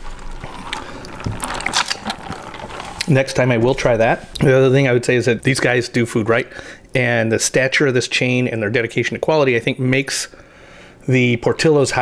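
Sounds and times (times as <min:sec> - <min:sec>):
drink cup crackling and clicking: 0:00.0 - 0:04.5.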